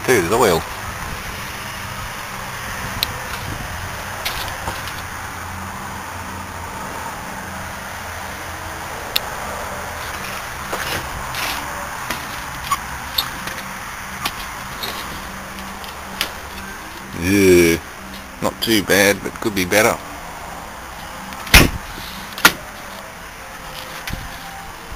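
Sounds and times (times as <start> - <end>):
outdoor background noise: 0.0 - 24.9.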